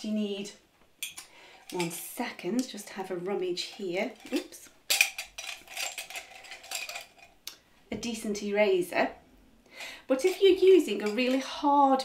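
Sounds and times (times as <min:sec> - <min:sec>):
pencils and pens rattling in a mug: 0:01.5 - 0:07.4, 0:10.0 - 0:12.0.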